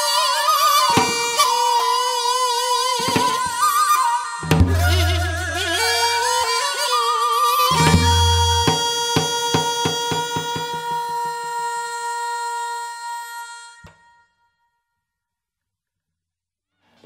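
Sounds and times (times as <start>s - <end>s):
wind instrument long note: 0.0s - 14.4s
drum strokes: 4.4s - 5.6s, 7.7s - 10.8s.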